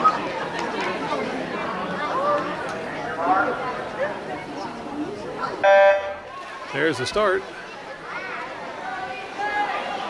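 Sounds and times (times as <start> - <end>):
spectators chattering: 0.0 - 10.0
starting horn beep: 5.6 - 6.2.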